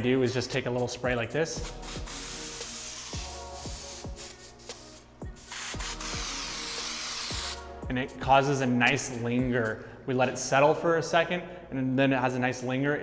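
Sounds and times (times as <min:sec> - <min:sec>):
aerosol spray hissing: 0:01.5 - 0:07.7.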